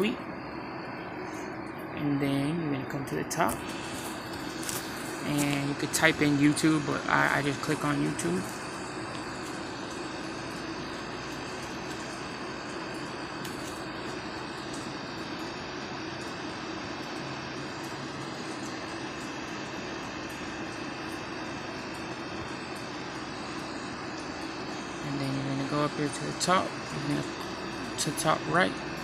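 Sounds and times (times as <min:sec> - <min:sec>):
background hum and hiss: 0:00.0 - 0:29.0.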